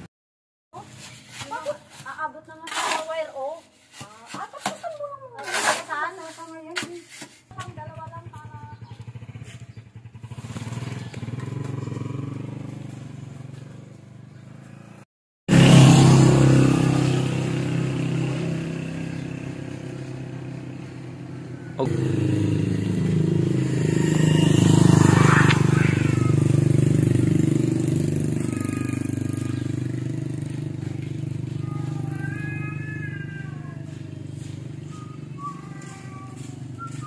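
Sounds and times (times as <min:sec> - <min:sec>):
vehicle engine passing: 0:07.8 - 0:37.0.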